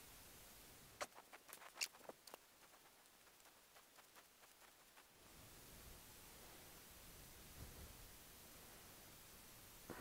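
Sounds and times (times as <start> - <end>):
faint small clicks and scrapes: 1.0 - 5.1.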